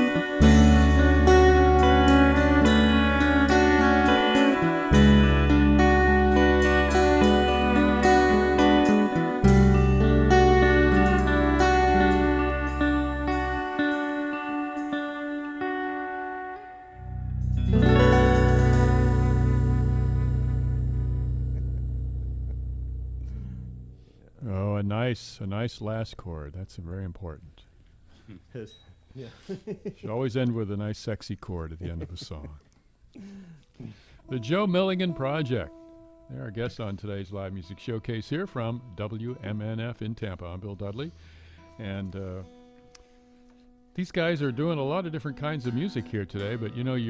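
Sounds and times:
held bass note: 0.0 - 14.1, 17.0 - 24.2
fiddle melody: 0.0 - 23.8, 34.3 - 47.0
electric guitar picking notes: 0.0 - 24.1, 34.3 - 40.1, 41.1 - 47.0.

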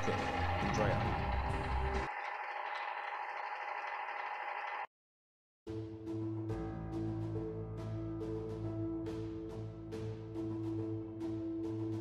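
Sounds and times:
toaster oven fan whirring: 0.0 - 4.9.

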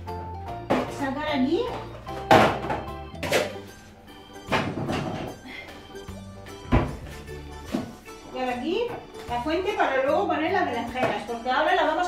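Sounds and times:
background music: 0.0 - 12.0
kitchen items thunking on countertop: 0.7 - 1.1, 1.7 - 3.6, 4.5 - 5.4, 6.7 - 7.0, 10.9 - 11.4.

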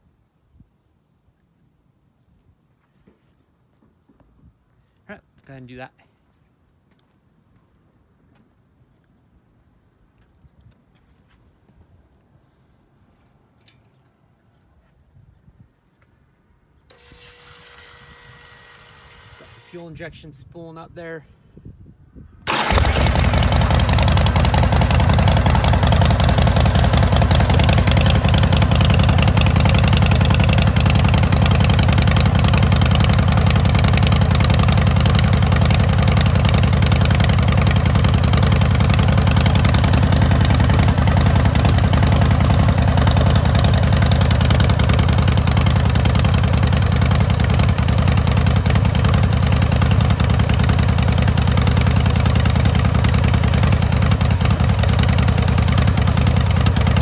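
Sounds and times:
motorcycle engine idling: 22.5 - 57.0.

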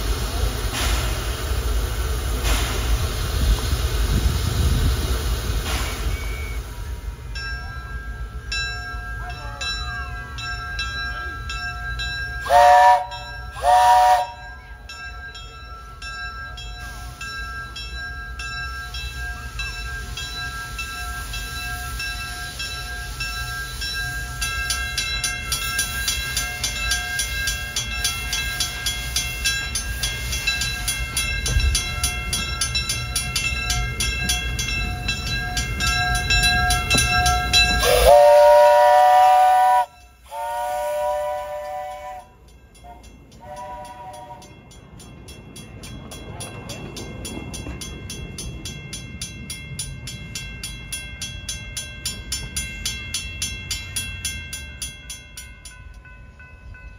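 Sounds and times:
locomotive engine low rumble: 0.0 - 54.8
steam locomotive whistle: 12.4 - 14.6, 37.6 - 44.5.

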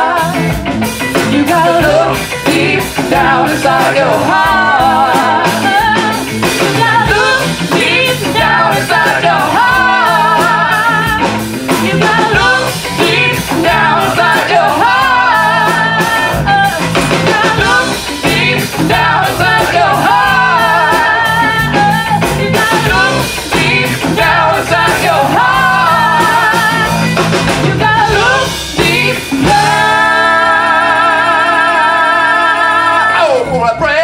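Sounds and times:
live rock band playing: 0.0 - 34.0.

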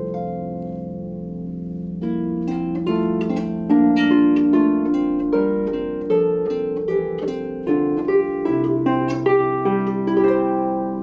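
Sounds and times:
harp plucked melody and chords: 0.0 - 11.0.

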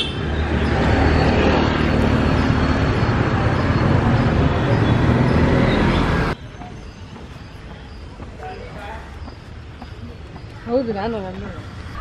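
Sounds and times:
road rumble: 0.0 - 12.0.

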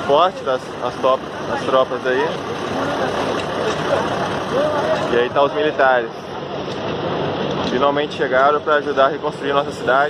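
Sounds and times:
army truck engines running: 0.0 - 10.0
crowd talking: 0.0 - 10.0.

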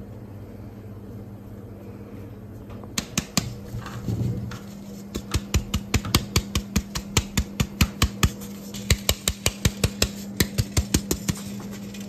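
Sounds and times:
steady low hum: 0.0 - 12.0
taps on metal flour sieve: 3.0 - 3.6, 5.1 - 11.6.

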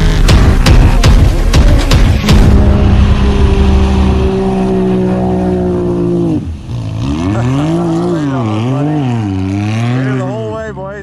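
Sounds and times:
off-road vehicle engine revving: 0.0 - 11.0.

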